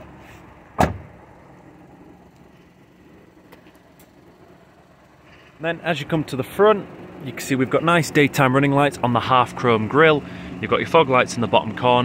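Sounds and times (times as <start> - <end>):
engine idling hum: 0.0 - 12.0.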